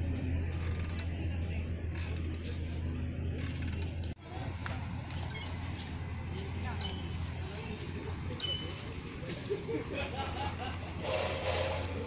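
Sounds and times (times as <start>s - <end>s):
metal pivots creaking: 0.5s - 4.2s, 11.0s - 12.0s.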